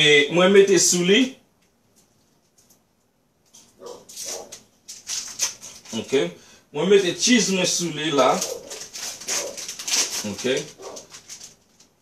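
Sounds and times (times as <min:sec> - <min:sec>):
plastic wrapping crinkling: 0:03.5 - 0:06.2, 0:07.0 - 0:12.0.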